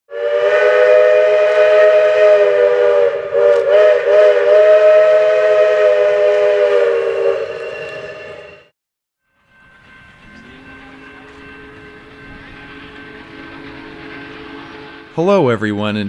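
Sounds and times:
steam hissing: 0:00.1 - 0:08.5
steam whistle long blast: 0:00.1 - 0:08.7.

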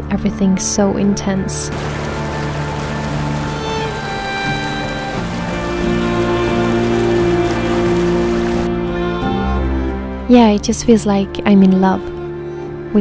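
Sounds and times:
soft background music: 0:00.0 - 0:13.0
flowing water rushing: 0:01.7 - 0:08.7.

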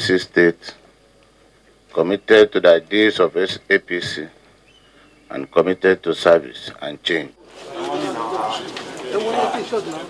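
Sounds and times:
indistinct crowd chatter: 0:07.4 - 0:10.0.

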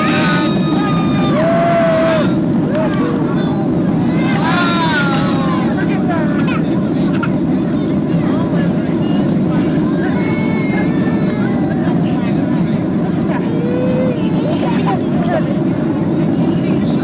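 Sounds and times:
indistinct passengers' voices: 0:00.0 - 0:17.0
jet airliner cabin noise: 0:00.0 - 0:17.0.

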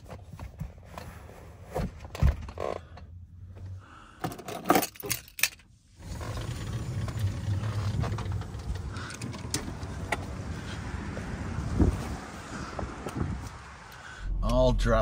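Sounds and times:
low rumble of open air: 0:00.1 - 0:15.0.

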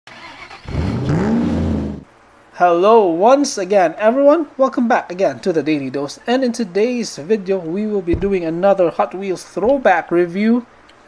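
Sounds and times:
car engine revving: 0:00.3 - 0:02.1.

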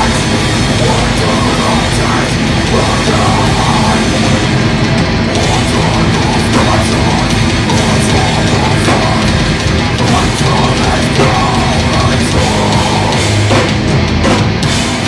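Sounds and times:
bass guitar: 0:00.0 - 0:15.0
distorted electric guitar: 0:00.0 - 0:15.0
drum kit: 0:00.0 - 0:15.0
heavy metal band playing live: 0:00.0 - 0:15.0.

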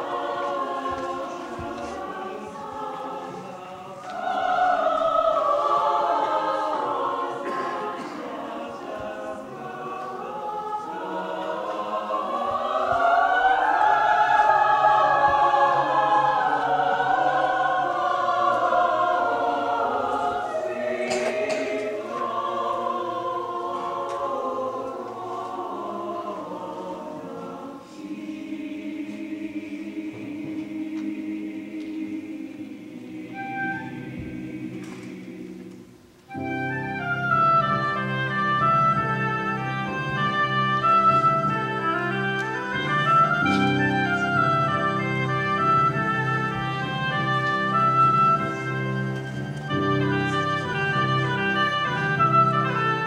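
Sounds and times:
opera singers singing: 0:00.0 - 0:53.0.

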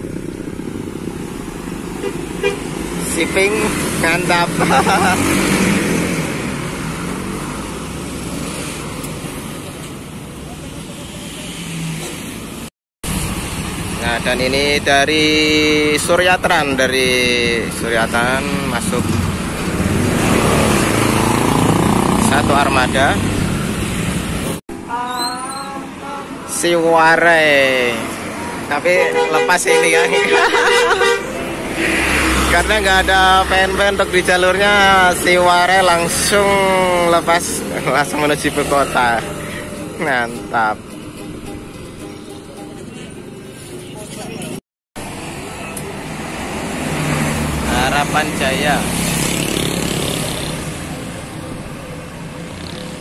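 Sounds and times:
bus engine rumble: 0:00.0 - 0:26.5
motorcycles passing: 0:00.0 - 0:53.0
roadside traffic: 0:00.0 - 0:53.0
bus driving past: 0:30.8 - 0:53.0.

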